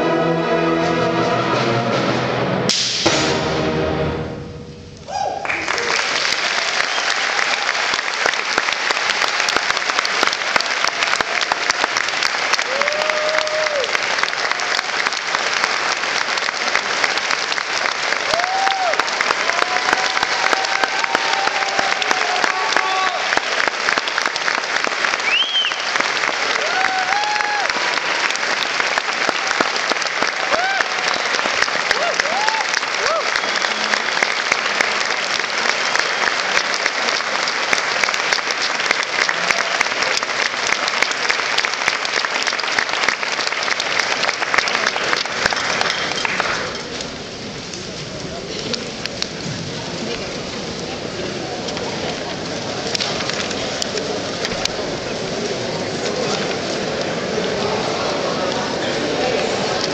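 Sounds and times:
audience applauding: 5.1s - 59.9s
cheers and shouts: 12.5s - 15.0s, 18.2s - 23.6s, 25.2s - 28.1s, 30.3s - 34.0s.

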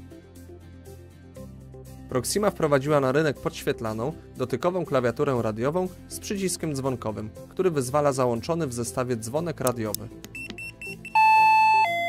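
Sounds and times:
short high beeps: 10.4s - 12.0s
two-note doorbell chime: 11.2s - 12.0s.

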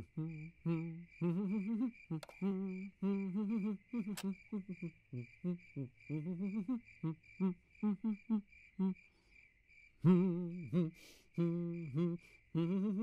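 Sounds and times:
man humming a bouncy tune: 0.0s - 9.0s, 10.0s - 13.0s
crickets chirping: 0.0s - 13.0s.

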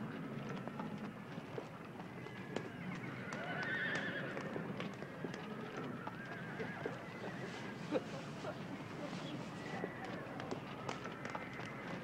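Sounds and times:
hooves clopping: 0.0s - 12.0s
horse whinnying: 3.2s - 4.4s.

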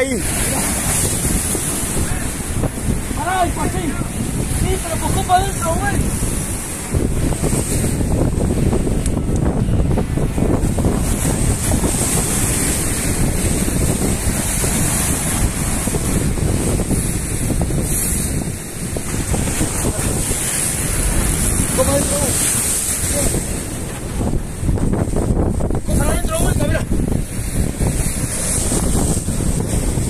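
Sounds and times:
surf breaking on shore: 0.0s - 30.0s
wind buffeting microphone: 0.0s - 30.0s.

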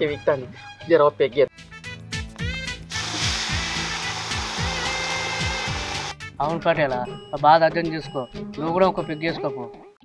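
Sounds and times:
onions sizzling in hot oil: 2.9s - 6.1s.

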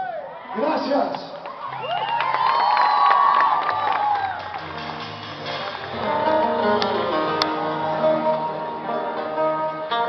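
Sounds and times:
audience cheering and whistling: 1.4s - 4.9s
acoustic guitars playing: 3.7s - 10.0s.

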